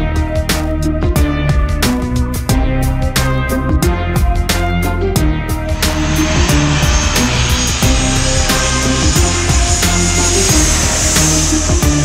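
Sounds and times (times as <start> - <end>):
music with steady beat: 0.0 - 12.0
jet engine rushing and whining: 5.6 - 12.0.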